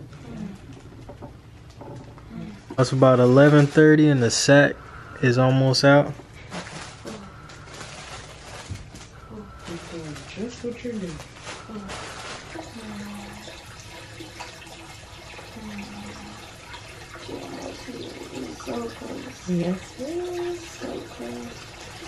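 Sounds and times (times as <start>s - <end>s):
woman moaning: 6.6s - 7.4s, 11.7s - 12.0s
water running from a hose: 9.6s - 22.0s.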